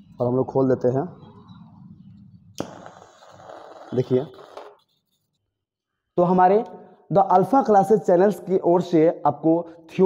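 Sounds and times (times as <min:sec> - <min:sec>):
gas jet hissing: 0:02.6 - 0:04.8.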